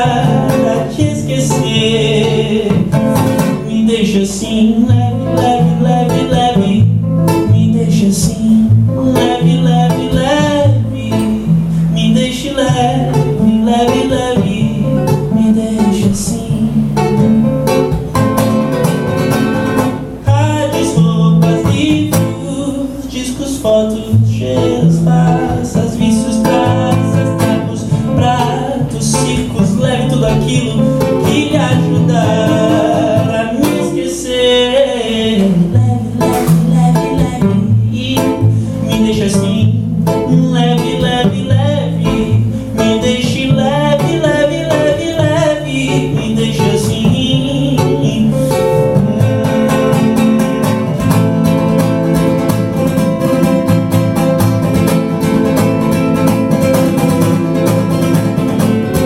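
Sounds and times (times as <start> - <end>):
acoustic guitar: 0.0 - 59.0
man singing: 0.0 - 59.0.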